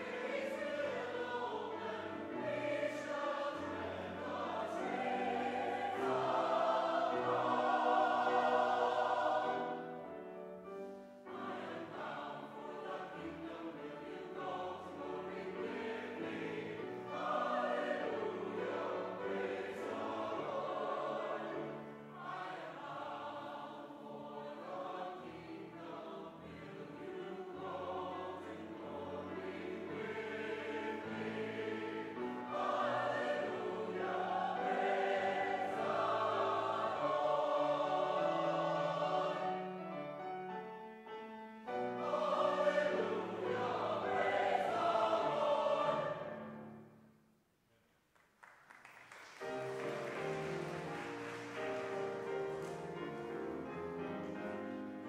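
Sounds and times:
choir singing sustained chords: 0:00.0 - 0:47.0.

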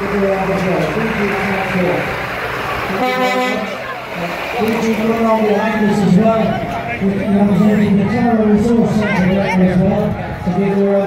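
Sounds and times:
passing truck rumble: 0:00.0 - 0:11.0
truck horn toot: 0:02.7 - 0:04.9.

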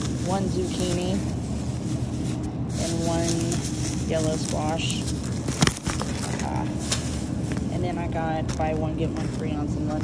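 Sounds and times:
store background hum: 0:00.0 - 0:10.0.

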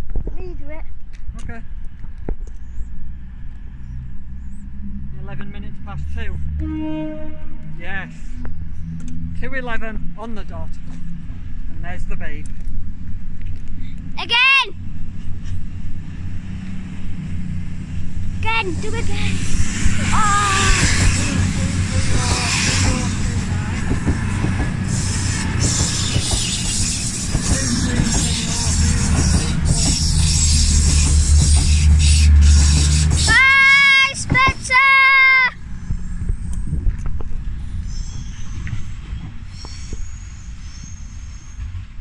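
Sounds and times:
diesel train engines droning: 0:01.0 - 0:42.0
flat-pitched train horn: 0:06.5 - 0:08.2.

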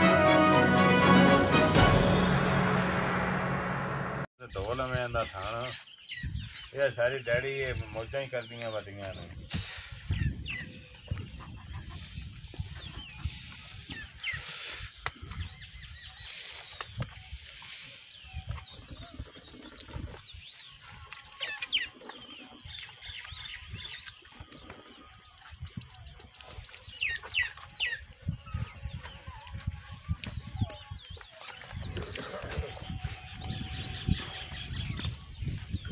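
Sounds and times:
birds chirping: 0:04.4 - 0:35.9.

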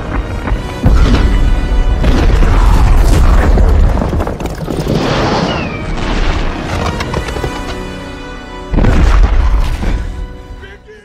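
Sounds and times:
orchestral film score: 0:00.0 - 0:11.0
deep explosive boom: 0:00.8 - 0:06.5, 0:08.7 - 0:10.0.

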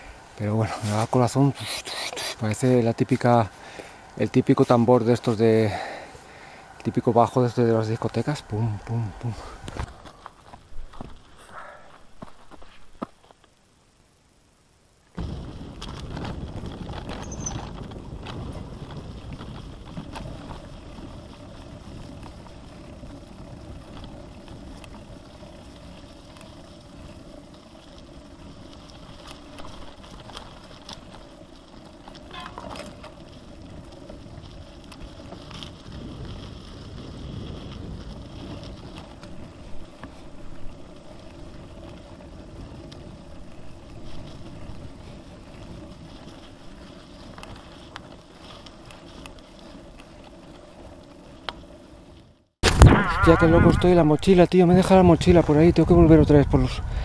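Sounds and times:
bike rolling rumble with rattle: 0:02.2 - 0:13.6, 0:15.1 - 0:53.2, 0:53.8 - 0:57.0.

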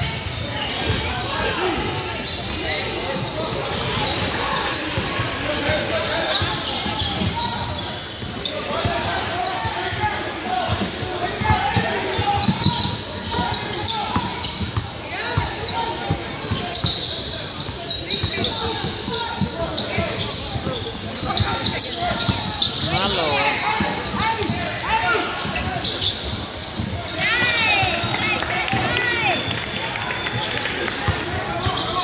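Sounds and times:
sneakers squeaking: 0:00.0 - 0:32.0.

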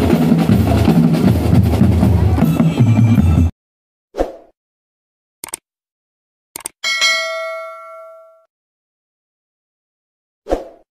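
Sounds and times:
bright notification bell ding: 0:06.8 - 0:08.5.

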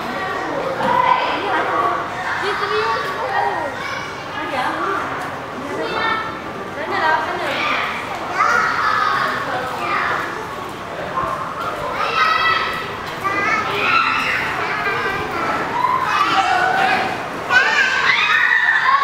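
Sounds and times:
children talking and calling out: 0:00.0 - 0:19.0.

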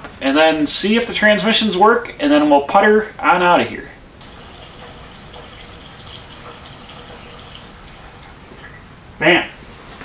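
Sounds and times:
gasoline pouring into fuel tank: 0:04.2 - 0:08.8.

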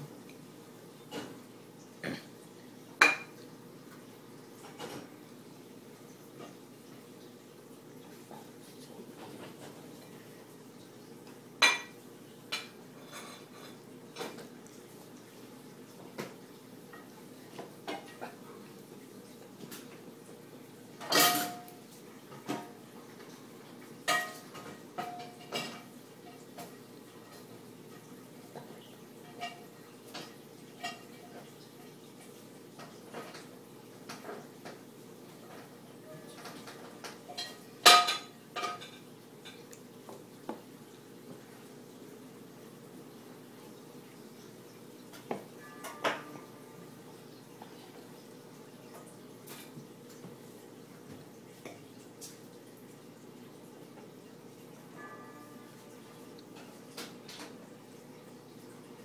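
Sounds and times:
dishes or cutlery clinking: 0:03.0 - 0:03.4, 0:21.0 - 0:21.8, 0:24.0 - 0:27.5, 0:36.3 - 0:39.7, 0:45.1 - 0:46.7.

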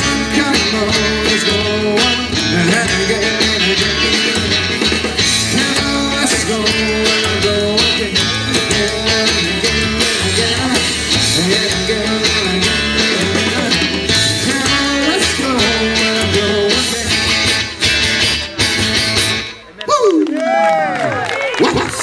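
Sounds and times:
upright double bass: 0:00.0 - 0:19.6
acoustic guitar: 0:00.0 - 0:19.7
drums: 0:00.0 - 0:19.7, 0:21.5 - 0:22.0
electric guitar: 0:00.0 - 0:19.7.

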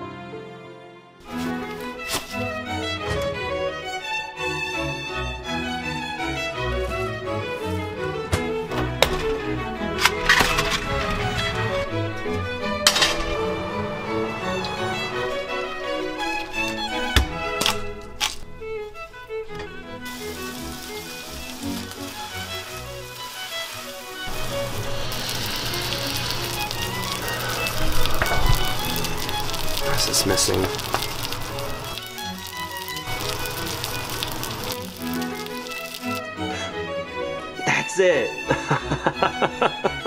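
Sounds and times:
orchestral string music: 0:00.0 - 0:40.0
meat sizzling in a frying pan: 0:20.0 - 0:36.2.

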